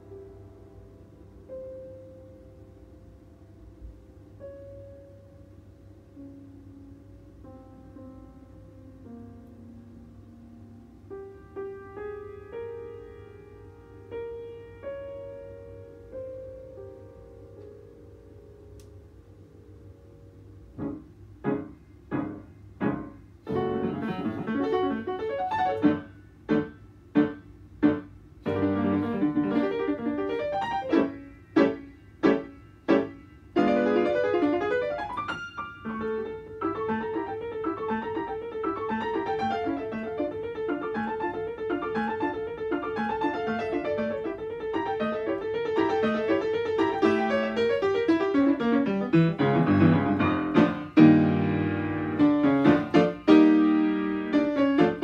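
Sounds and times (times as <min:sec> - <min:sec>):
solo grand piano: 0:00.0 - 0:55.0.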